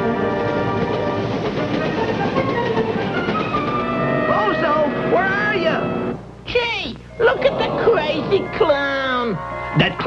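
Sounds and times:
cartoon train rumbling on rails: 0:00.0 - 0:06.1.

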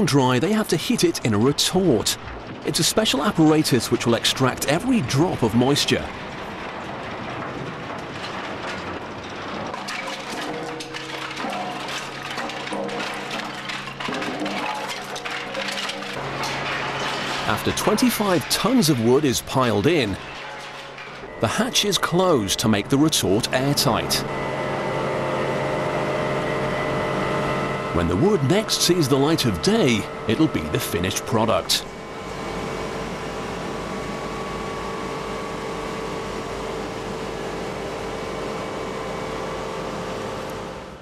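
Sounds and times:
factory machinery noise: 0:00.0 - 0:41.0
wood offcuts clattering: 0:03.5 - 0:24.0.

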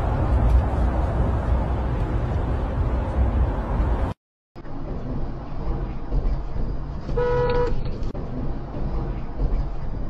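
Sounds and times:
car driving rumble: 0:00.0 - 0:10.0
vehicle horn toot: 0:07.2 - 0:07.8.

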